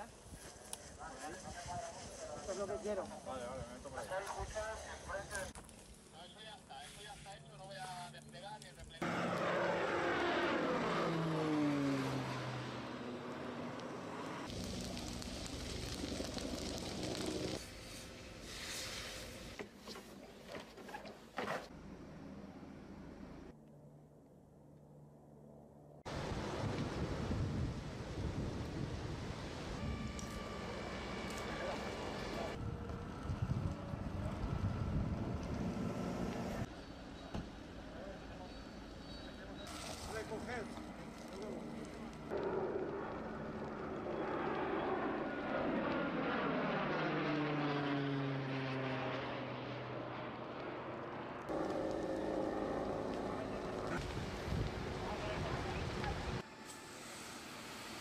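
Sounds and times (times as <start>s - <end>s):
passing engine: 9.0s - 17.6s.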